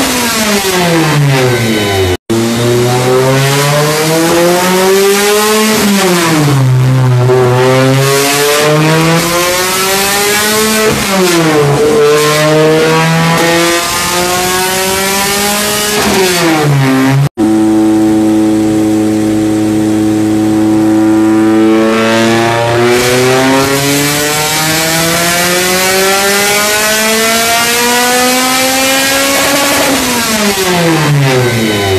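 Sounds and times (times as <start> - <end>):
car engine revving on dyno: 0.0 - 31.9.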